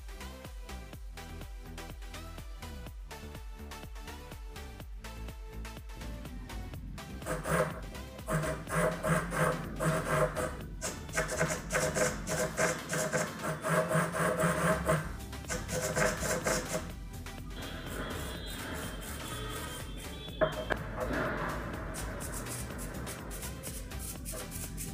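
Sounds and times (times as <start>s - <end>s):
background music: 0.0s - 24.9s
small servo whirring in bursts: 7.3s - 16.9s.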